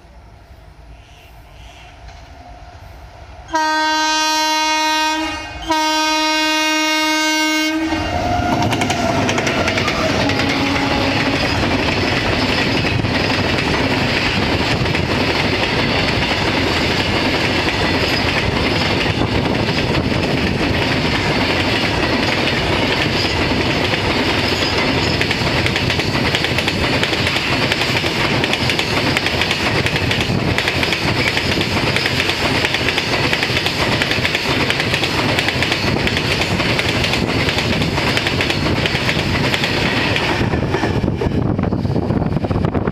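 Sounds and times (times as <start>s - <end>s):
freight train rumbling past: 0.0s - 42.9s
locomotive horn blast: 3.5s - 11.6s.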